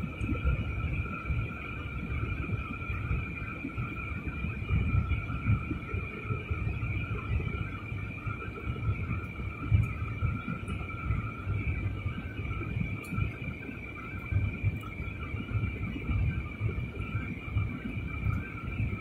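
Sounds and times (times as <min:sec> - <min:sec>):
jet cabin low rumble: 0:00.0 - 0:19.0.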